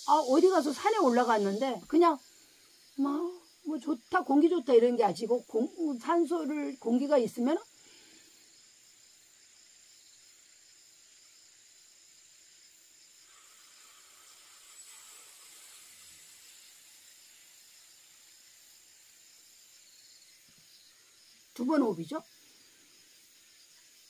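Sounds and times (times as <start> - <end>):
slow breath blown out: 7.8 - 8.5.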